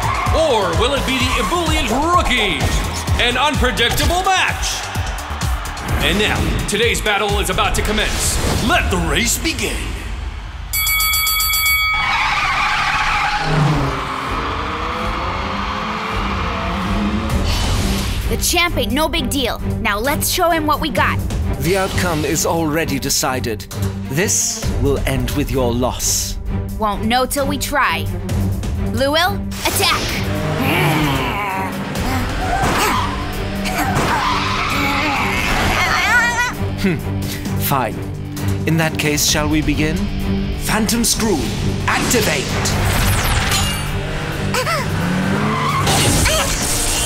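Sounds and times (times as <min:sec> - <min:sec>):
tire squeals: 0:00.0 - 0:04.9, 0:11.9 - 0:18.1, 0:31.8 - 0:36.5, 0:44.0 - 0:47.0
background music: 0:00.0 - 0:47.0
cartoon race car engines: 0:12.0 - 0:18.2, 0:29.6 - 0:36.6, 0:42.0 - 0:47.0.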